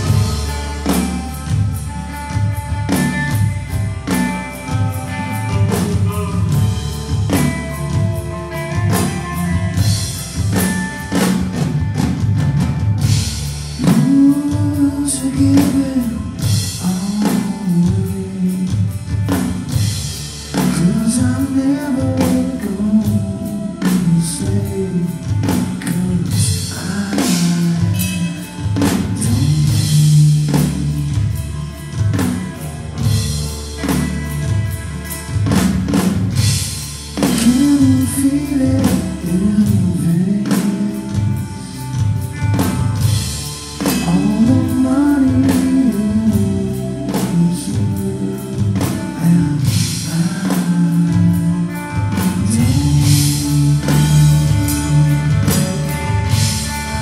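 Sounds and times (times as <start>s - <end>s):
bass guitar: 0.0s - 57.0s
distorted electric guitars: 0.0s - 57.0s
drum kit beat: 0.0s - 57.0s.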